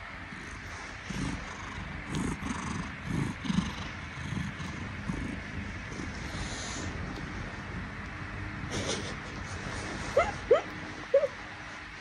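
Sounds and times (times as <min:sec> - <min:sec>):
cat purring: 0:00.0 - 0:11.4.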